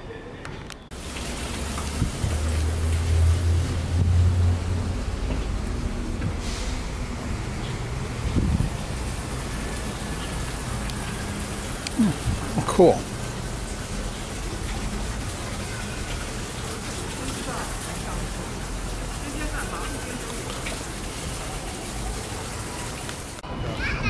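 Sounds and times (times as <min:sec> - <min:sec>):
rush of water: 0:00.9 - 0:23.4.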